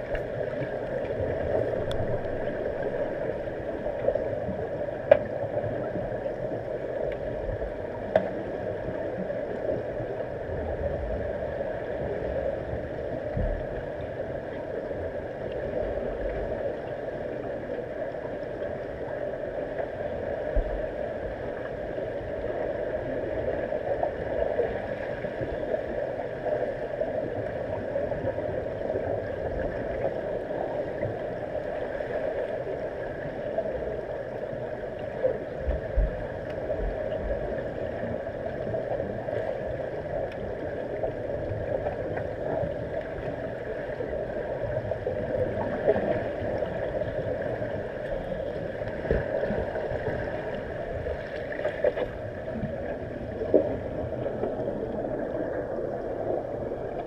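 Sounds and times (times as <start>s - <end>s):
muffled underwater pool noise: 0.0s - 57.0s.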